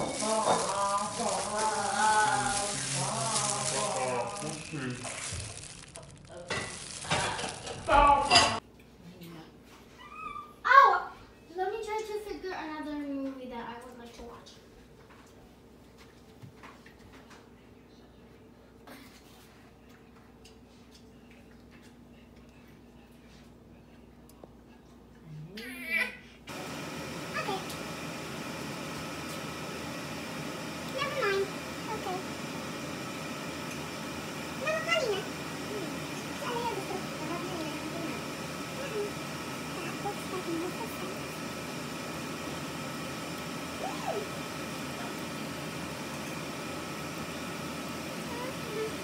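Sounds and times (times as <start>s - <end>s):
food sizzling in oil: 0.0s - 8.6s, 26.5s - 49.0s
plastic gloves crinkling: 0.0s - 8.6s
wrapper rustling: 0.0s - 8.6s.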